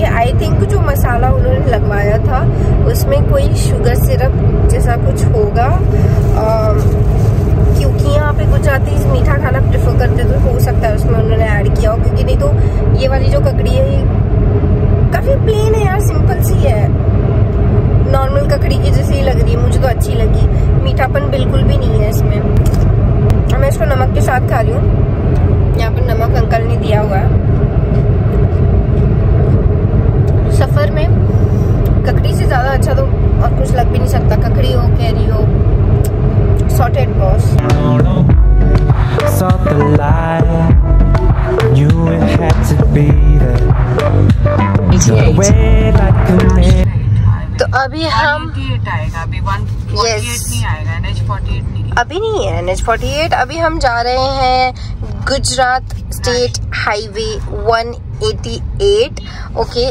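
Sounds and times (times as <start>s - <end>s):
car cabin road rumble: 0.0s - 59.9s
voices talking: 41.6s - 59.9s.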